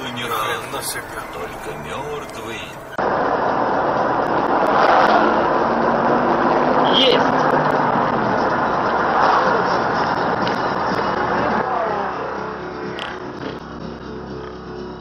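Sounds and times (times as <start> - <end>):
car road and engine noise: 0.0 - 15.0.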